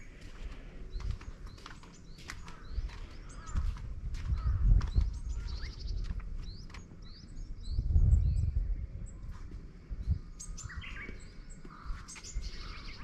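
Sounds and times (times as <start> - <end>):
low rumble: 0.0 - 10.8
small birds chirping: 0.0 - 13.0.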